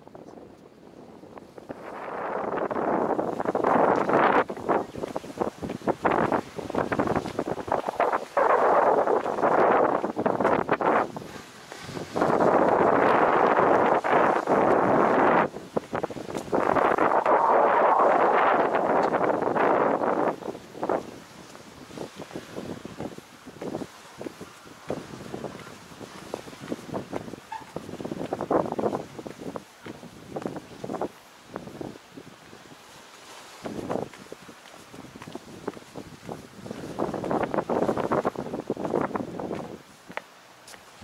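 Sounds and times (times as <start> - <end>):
wind buffeting microphone: 0.0 - 40.2.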